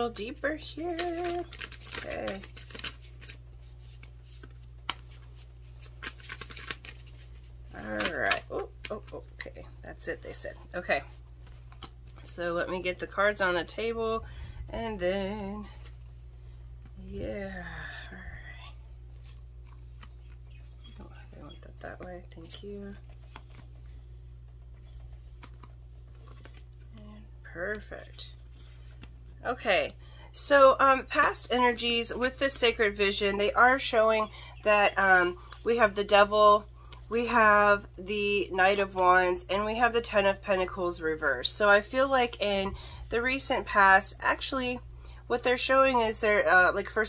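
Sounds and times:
steady low hum: 0.0s - 47.0s
cards being shuffled: 0.3s - 12.4s, 19.1s - 29.4s.

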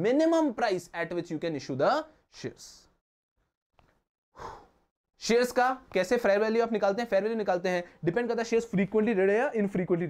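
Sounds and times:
man breathing: 4.4s - 4.9s.

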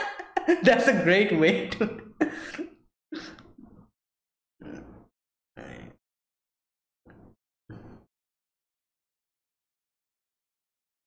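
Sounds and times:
man laughing: 0.0s - 2.8s.

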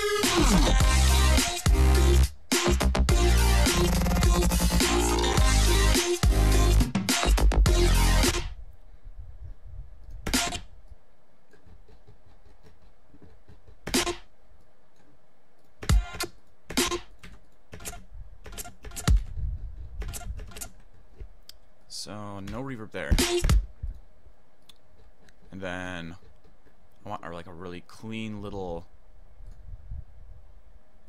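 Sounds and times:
electronic dubstep track: 0.0s - 8.5s, 10.3s - 10.6s, 23.1s - 23.6s
low steady background noise: 8.5s - 31.0s.

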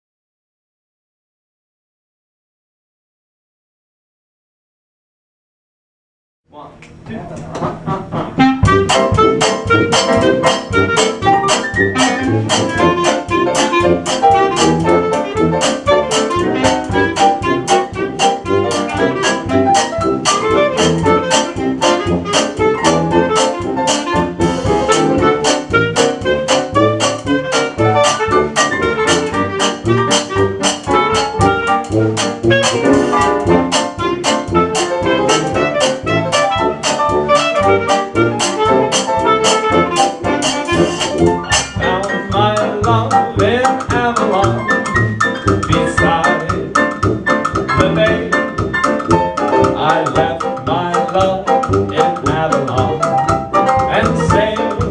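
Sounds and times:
drum kit: 6.6s - 54.9s
piano: 7.1s - 54.9s
tuba: 7.2s - 54.9s
clarinet lead: 7.7s - 50.0s.

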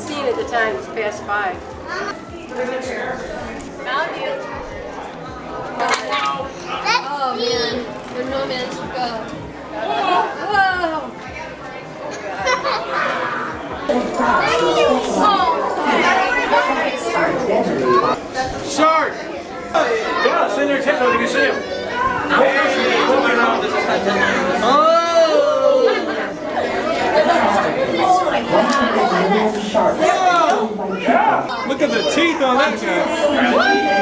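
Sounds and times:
crowd chatter: 0.0s - 34.0s
children's voices: 1.8s - 2.2s, 5.9s - 8.5s, 9.8s - 24.8s, 25.4s - 34.0s.

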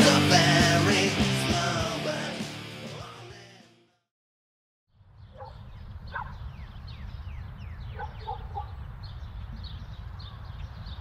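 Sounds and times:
birds chirping: 5.0s - 11.0s
wind rumbling on microphone: 5.0s - 11.0s.

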